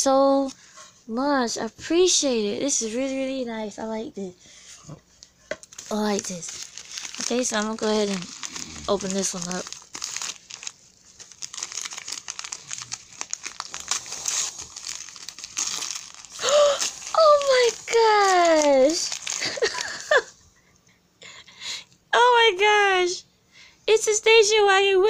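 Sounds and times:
wrapping paper crinkling: 0:05.6 - 0:20.3
person exclaiming: 0:08.2 - 0:09.3, 0:16.4 - 0:20.3.

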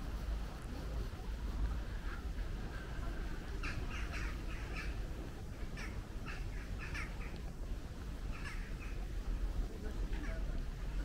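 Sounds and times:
crow calling: 0:03.6 - 0:05.0, 0:05.6 - 0:07.4, 0:08.2 - 0:09.1.

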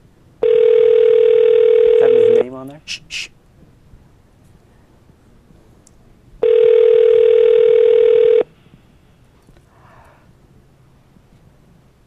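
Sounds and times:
telephone ringback tone: 0:00.4 - 0:02.4, 0:06.4 - 0:08.5.

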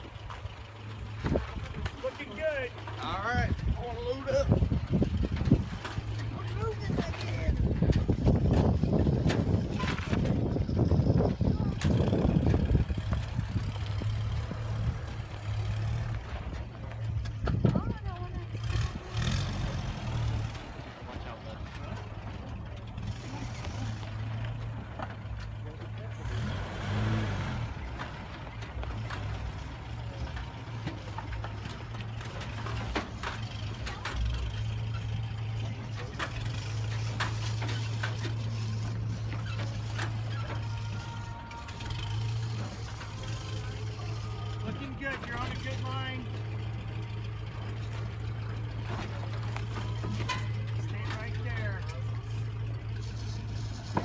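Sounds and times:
pickup engine running at low revs: 0:00.0 - 0:54.0.

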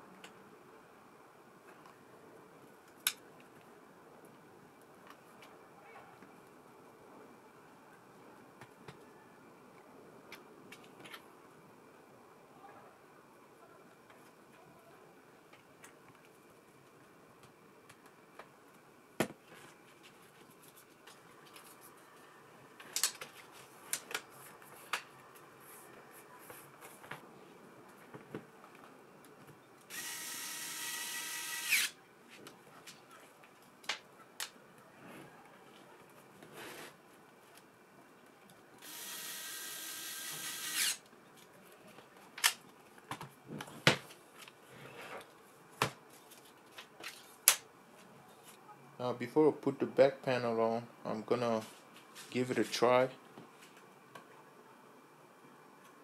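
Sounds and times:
electric screwdriver whining: 0:29.9 - 0:32.0, 0:38.8 - 0:41.0.

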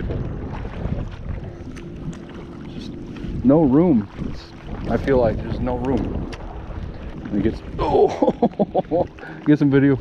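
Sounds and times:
water washing against bank: 0:00.0 - 0:10.0
wind buffeting microphone: 0:00.0 - 0:10.0.

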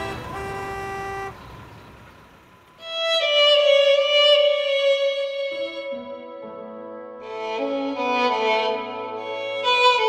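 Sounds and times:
car horn honk: 0:00.0 - 0:02.0.

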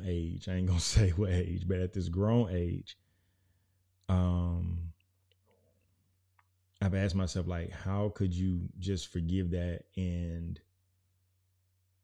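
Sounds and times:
man speaking: 0:00.0 - 0:03.0, 0:04.1 - 0:05.0, 0:06.8 - 0:10.6.

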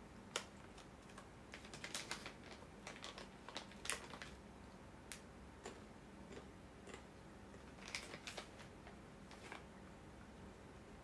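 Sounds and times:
plastic snack pouch crinkling: 0:00.3 - 0:04.4, 0:07.6 - 0:09.7.

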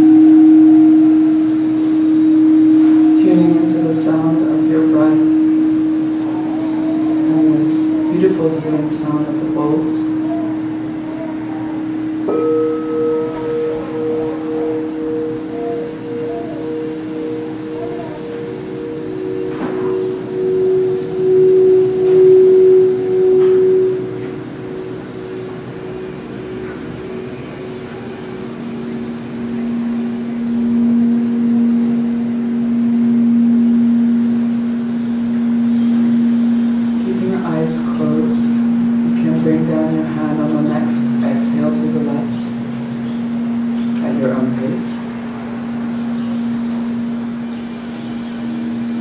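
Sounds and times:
singing bowls ringing: 0:00.0 - 0:49.0.

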